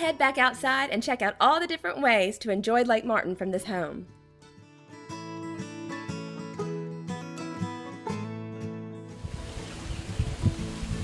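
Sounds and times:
acoustic music: 3.7s - 11.0s
outdoor hiss: 9.1s - 11.0s
wind rumbles: 9.2s - 11.0s.

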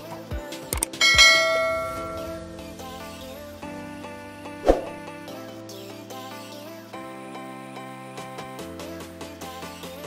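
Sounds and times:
background music with steady beat: 0.0s - 10.0s
bell chime: 1.0s - 3.0s.

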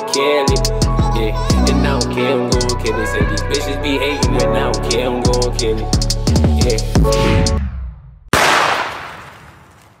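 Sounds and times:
gunshot with echoing tail: 8.3s - 9.8s.

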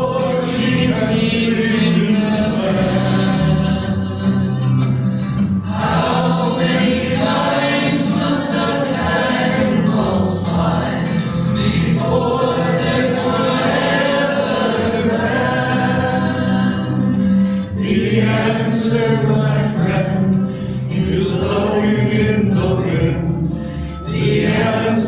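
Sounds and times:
congregation singing a hymn: 0.0s - 25.0s.

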